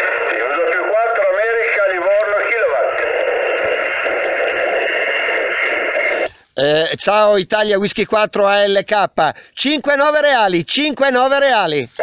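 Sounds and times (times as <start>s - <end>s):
thin voice over radio: 0.0s - 4.6s
radio receiver hiss: 0.0s - 7.4s.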